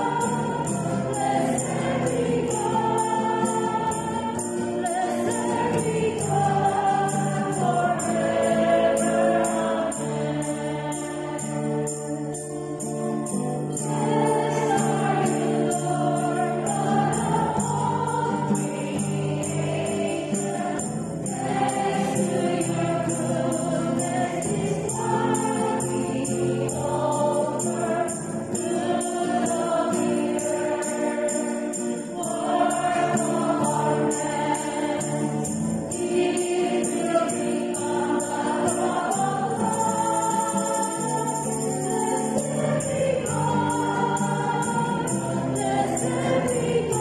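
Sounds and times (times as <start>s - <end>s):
choir singing a hymn: 0.0s - 47.0s
strummed acoustic guitar: 0.0s - 47.0s
tambourine jingling: 0.0s - 47.0s.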